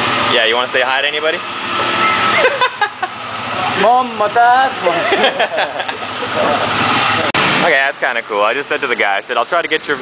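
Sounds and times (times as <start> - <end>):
small motorcycle engine running: 0.0 - 7.3.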